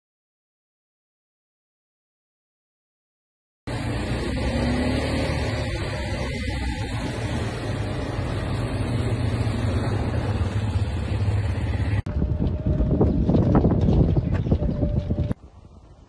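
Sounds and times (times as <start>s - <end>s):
quad bike engine running: 3.7s - 15.4s
wind noise rumble: 5.4s - 16.0s.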